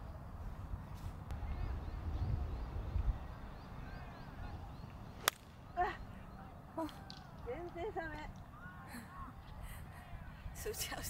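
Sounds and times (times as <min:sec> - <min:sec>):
golf club striking ball: 0:05.2 - 0:05.5.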